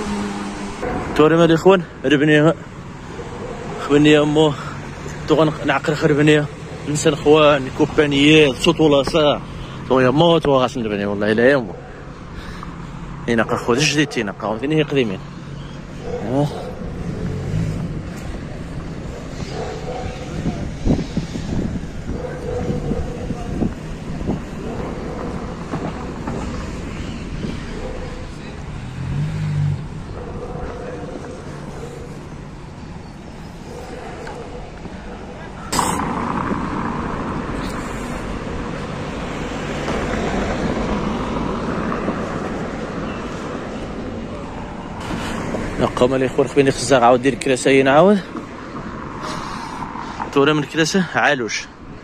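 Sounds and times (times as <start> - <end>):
car passing: 0.0 - 52.0
traffic rumble: 0.0 - 52.0
engine hum: 14.9 - 46.9.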